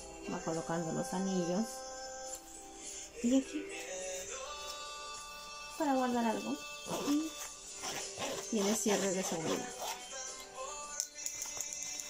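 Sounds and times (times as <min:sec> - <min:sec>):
background music with held tones: 0:00.0 - 0:12.0.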